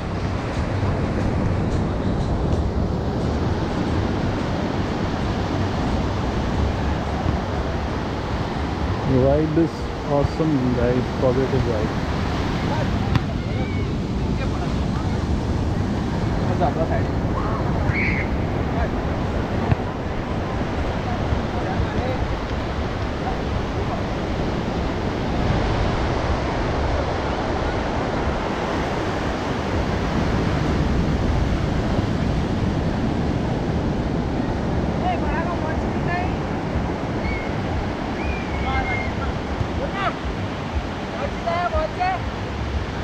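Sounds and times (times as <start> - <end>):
ocean surf breaking on beach: 0.0 - 43.0.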